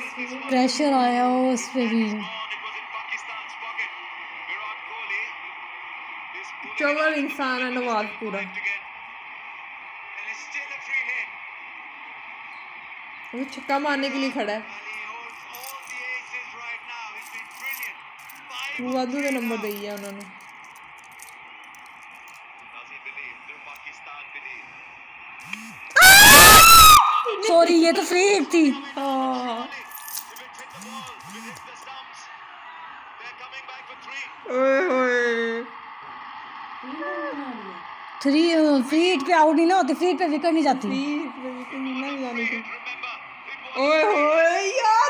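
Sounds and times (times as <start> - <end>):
commentator speaking through phone speaker: 6.4 - 8.9, 13.3 - 17.8, 18.5 - 20.4, 27.3 - 32.3, 38.2 - 45.0
loud drawn-out human call: 25.6 - 27.4, 36.8 - 37.9.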